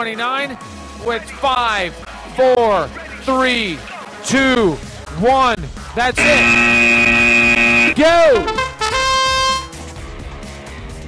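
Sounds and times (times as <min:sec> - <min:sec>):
background music: 0:00.0 - 0:11.0
arena noise: 0:06.2 - 0:08.7
electronic horn tone: 0:06.2 - 0:09.8.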